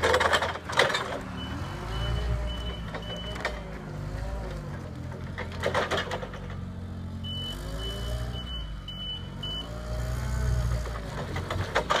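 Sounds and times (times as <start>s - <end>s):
forklift engine running: 0.0s - 12.0s.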